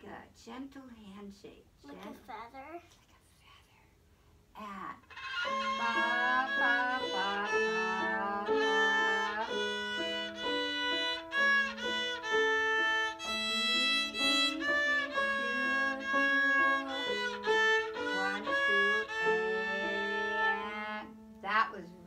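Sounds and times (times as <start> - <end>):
person speaking: 1.8 - 2.8, 5.6 - 9.8
violin playing: 5.1 - 21.3
low sustained accompaniment: 5.5 - 22.0.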